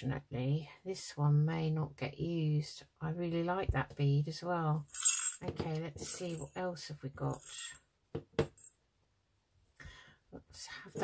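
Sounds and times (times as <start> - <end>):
beads clinking in plastic pot: 4.8 - 6.6, 7.2 - 7.8.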